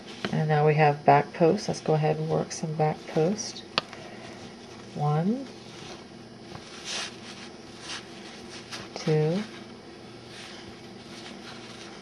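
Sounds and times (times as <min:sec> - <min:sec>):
faint steady hum: 0:00.0 - 0:12.0
yarn rustling on crochet hook: 0:04.5 - 0:12.0.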